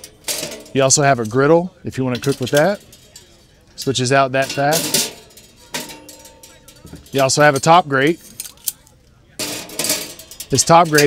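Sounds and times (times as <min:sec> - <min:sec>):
grill grate clinking: 0:00.0 - 0:11.0
metallic scrape and clatter: 0:00.0 - 0:11.0.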